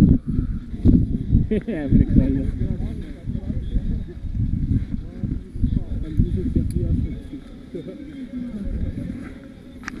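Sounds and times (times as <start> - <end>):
wind rumbling on microphone: 0.0 - 10.0.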